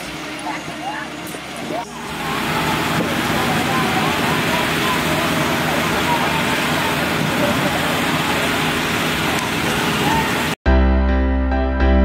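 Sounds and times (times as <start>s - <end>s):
people talking: 0.3s - 10.6s
loud rushing hiss: 1.1s - 10.6s.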